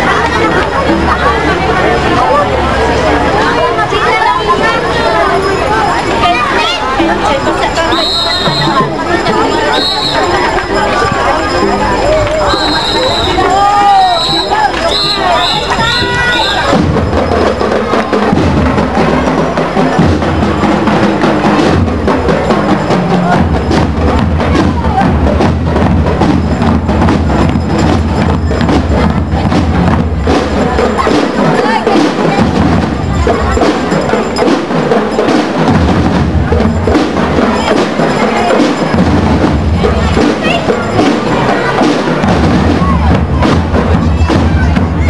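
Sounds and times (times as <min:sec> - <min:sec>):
bass and snare drums: 0:00.0 - 0:45.0
bell lyres ringing: 0:01.6 - 0:18.1, 0:26.1 - 0:29.6, 0:30.4 - 0:42.2.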